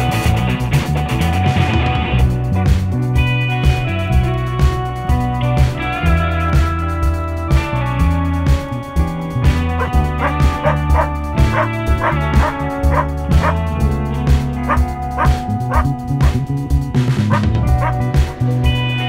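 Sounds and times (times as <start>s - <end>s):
background music with bass line: 0.0s - 19.0s.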